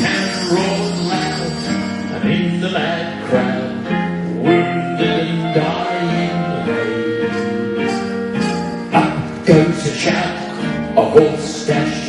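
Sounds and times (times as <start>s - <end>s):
big band playing live: 0.0s - 12.0s.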